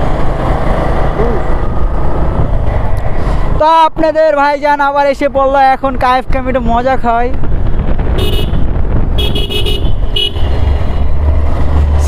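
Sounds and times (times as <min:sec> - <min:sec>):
wind rumble on microphone: 0:00.0 - 0:03.6, 0:05.0 - 0:12.0.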